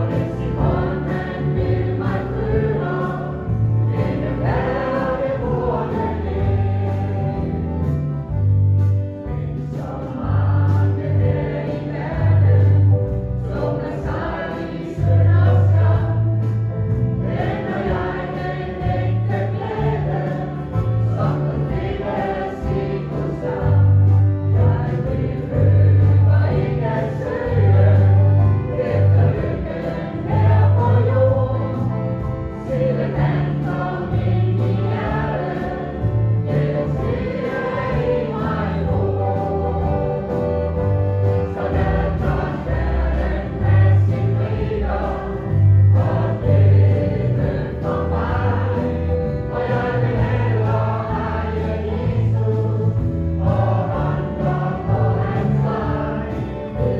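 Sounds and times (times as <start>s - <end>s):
choir singing a gospel hymn: 0.0s - 56.9s.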